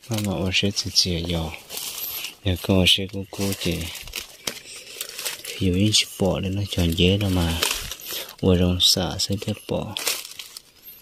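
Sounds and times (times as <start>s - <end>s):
person talking: 0.0s - 1.7s, 2.3s - 4.1s, 5.5s - 10.1s
dry leaves rustling underfoot: 0.0s - 11.0s
sharp crackles: 0.0s - 11.0s.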